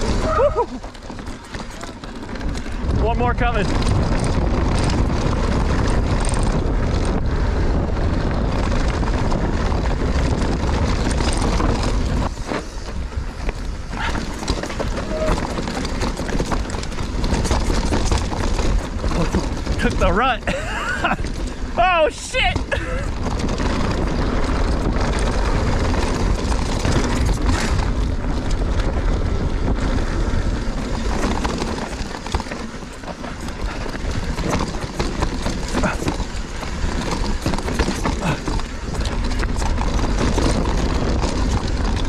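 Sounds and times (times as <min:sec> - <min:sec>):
bike tyres rolling on dirt: 0:00.0 - 0:42.0
wind on microphone: 0:00.0 - 0:42.0.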